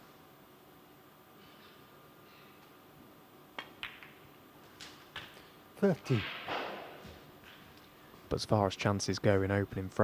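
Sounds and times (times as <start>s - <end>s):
snooker balls clicking: 3.5s - 5.5s
ball knocking into pocket: 3.6s - 4.2s.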